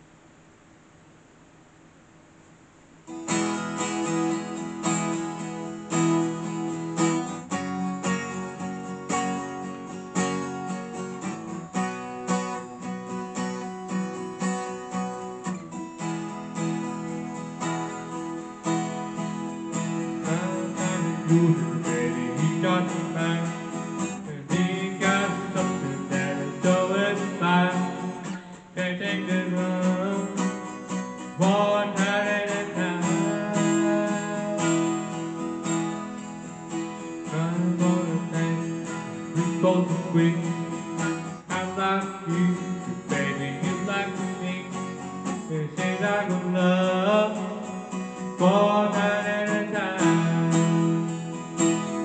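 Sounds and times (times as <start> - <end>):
acoustic guitar strumming: 2.9 - 52.0.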